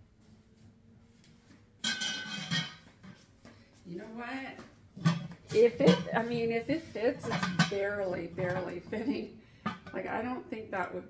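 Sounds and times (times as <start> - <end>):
glass clattering with ring: 1.8 - 2.8.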